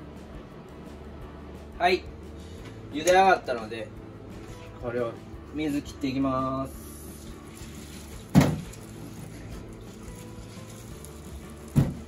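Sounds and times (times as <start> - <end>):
sharp thump: 8.3 - 8.7.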